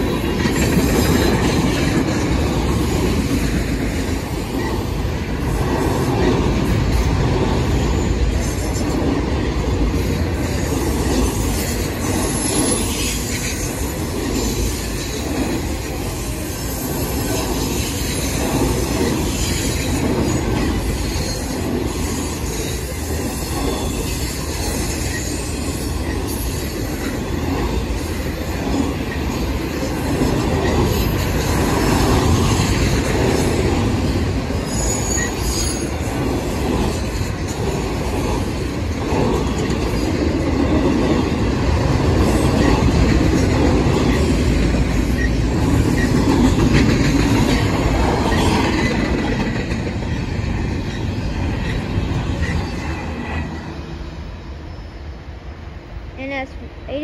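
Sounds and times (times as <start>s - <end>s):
freight train wheels rumbling: 0.0s - 57.0s
high squeal: 34.6s - 36.0s.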